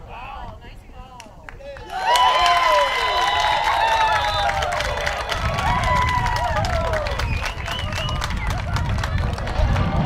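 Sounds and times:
people shouting and cheering: 1.6 - 10.0
steady low rumble: 5.1 - 10.0.

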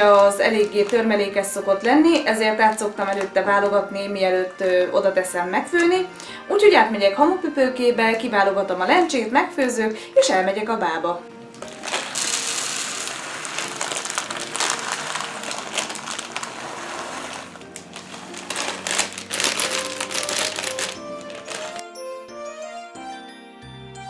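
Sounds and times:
plastic bag crinkling: 0.0 - 4.6, 11.5 - 22.0
background music: 0.0 - 24.0
lentils rattling onto countertop: 11.6 - 21.8.

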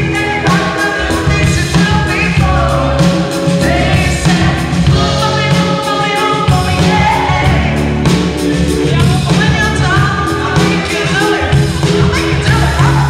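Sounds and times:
rock drum kit hits: 0.0 - 13.0
woman singing through pa: 0.1 - 7.8.

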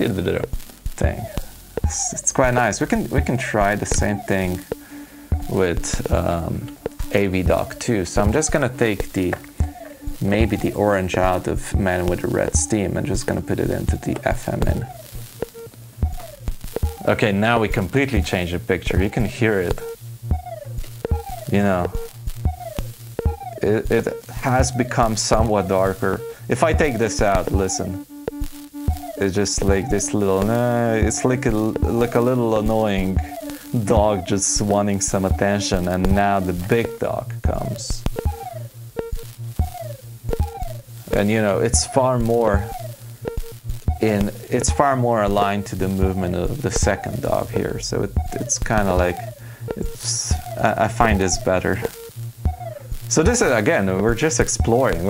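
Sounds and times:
falling electronic tone: 0.0 - 55.0
low hum: 0.0 - 55.0
sharp electronic clicks: 0.0 - 55.0
white noise hiss: 0.0 - 55.0.

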